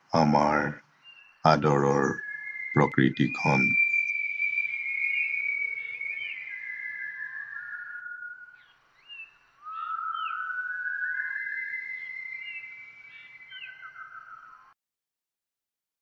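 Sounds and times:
high whistle-like melody: 1.8s - 8.6s, 9.2s - 14.2s.

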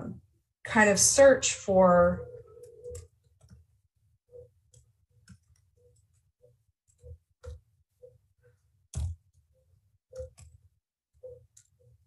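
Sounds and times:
computer keyboard keystrokes: 6.9s - 7.6s, 8.9s - 9.2s, 10.1s - 10.6s.

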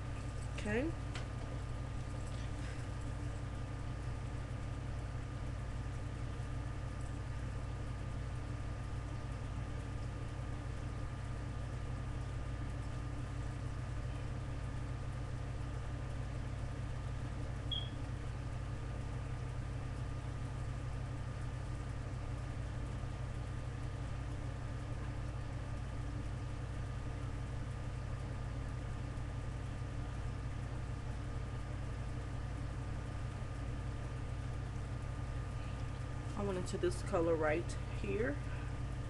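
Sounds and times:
low background hum: 0.0s - 39.0s.

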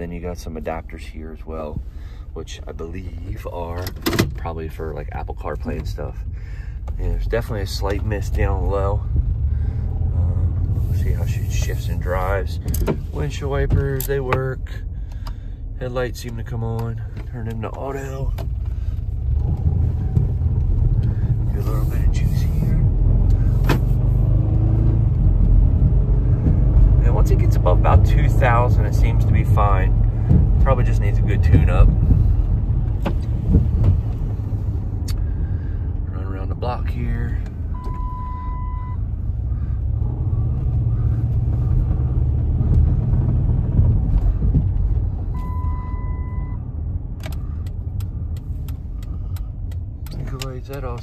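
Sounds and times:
man talking: 0.0s - 6.3s, 6.9s - 9.1s, 10.2s - 14.8s, 15.8s - 18.4s, 21.4s - 22.9s, 27.0s - 30.0s, 30.6s - 32.0s, 36.1s - 37.5s, 50.1s - 51.0s
car engine accelerating: 4.4s - 51.0s
turn signal clicking: 37.4s - 39.2s, 39.9s - 51.0s
electronic dashboard beep: 37.7s - 39.0s, 45.3s - 46.7s.

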